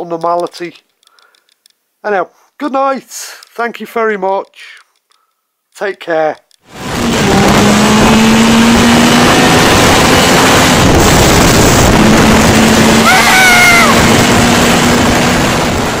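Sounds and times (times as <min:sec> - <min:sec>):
vehicle running: 0:06.7 - 0:16.0
wind rush on microphone: 0:06.7 - 0:16.0.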